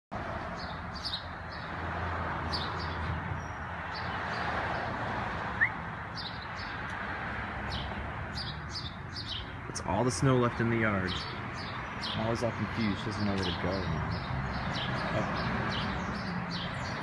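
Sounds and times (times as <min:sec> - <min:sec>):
small birds chirping: 0:00.5 - 0:01.8, 0:05.6 - 0:07.0, 0:07.7 - 0:17.0.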